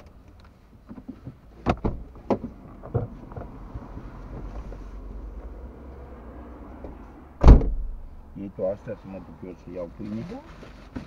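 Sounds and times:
car door shutting: 0.9s - 3.6s, 6.8s - 8.0s
car rumbling past slowly: 2.5s - 10.0s.

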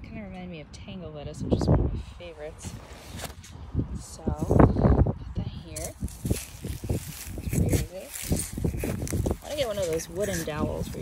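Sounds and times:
wind buffeting microphone: 1.0s - 11.0s
trowel scraping dry soil: 5.8s - 11.0s.

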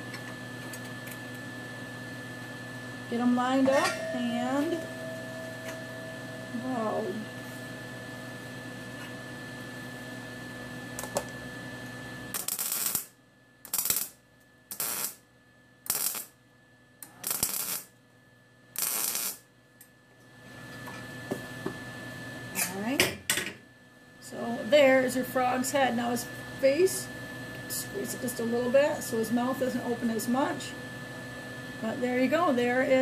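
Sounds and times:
steady hum with high tone: 0.0s - 33.0s
welder crackling buzz: 10.8s - 16.4s, 17.0s - 18.0s, 18.7s - 19.5s.

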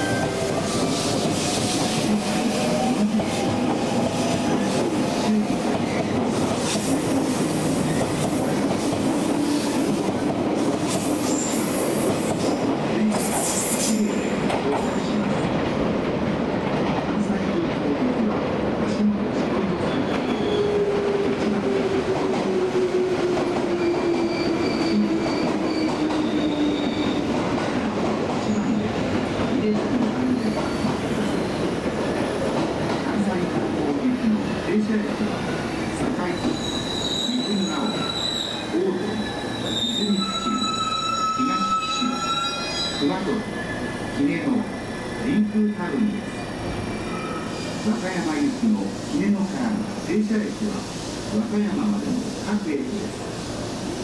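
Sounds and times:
train wheels rolling on rail: 0.0s - 54.0s
high wheel squeal: 19.9s - 20.8s, 23.8s - 27.3s, 36.4s - 44.2s, 46.9s - 47.9s.

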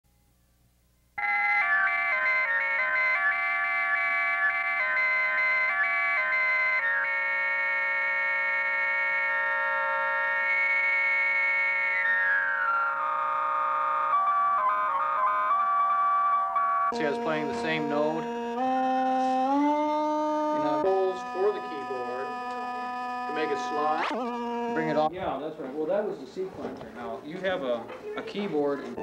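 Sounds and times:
synthesizer sequencer notes: 9.4s - 25.2s.

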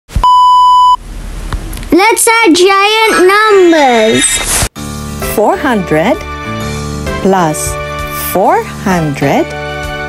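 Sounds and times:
static hiss: 0.8s - 5.2s.

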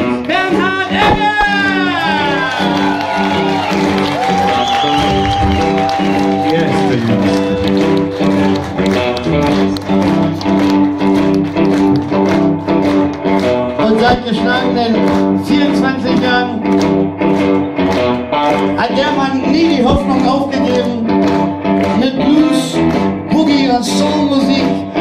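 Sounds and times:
electric guitars: 0.0s - 25.0s
organ chords: 0.0s - 25.0s
drum kit: 0.9s - 25.0s.

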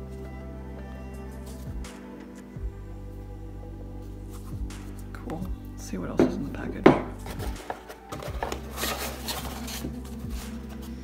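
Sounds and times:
soft background music: 0.0s - 11.0s
packaging rustling and scraping: 7.2s - 11.0s.

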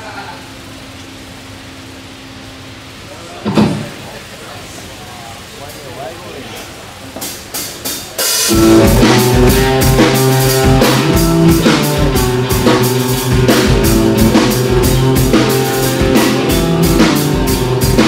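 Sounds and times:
heavy rock band playing: 7.2s - 18.0s
sharp drum hits: 8.4s - 18.0s.

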